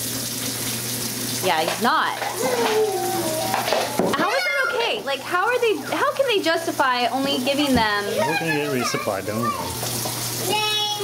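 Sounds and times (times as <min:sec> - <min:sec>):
woman talking: 0:01.4 - 0:02.5, 0:04.1 - 0:08.2.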